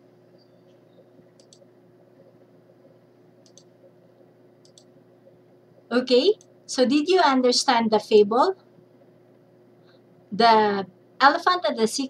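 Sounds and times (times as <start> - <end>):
room noise: 0.0 - 12.0
faint sharp clicks: 1.4 - 1.7, 3.4 - 3.7, 4.6 - 4.9
woman speaking: 5.9 - 8.6, 10.3 - 12.0.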